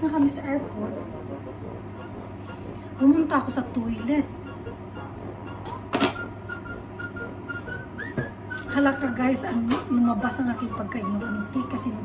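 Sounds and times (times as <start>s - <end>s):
high whistle-like tone: 4.0s - 9.4s, 10.3s - 12.0s.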